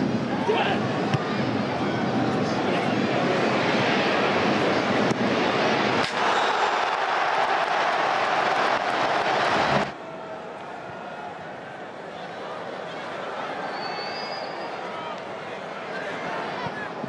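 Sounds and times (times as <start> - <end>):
stadium crowd noise: 0.0 - 17.0
crowd cheering loudly: 0.5 - 17.0.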